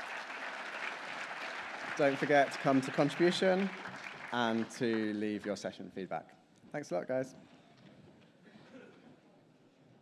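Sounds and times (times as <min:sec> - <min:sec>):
audience applauding: 0:00.0 - 0:05.7.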